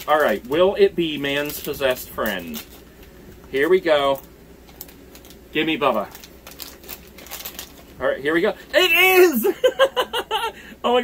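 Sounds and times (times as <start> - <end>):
foil packet crinkling: 0.0 - 9.2.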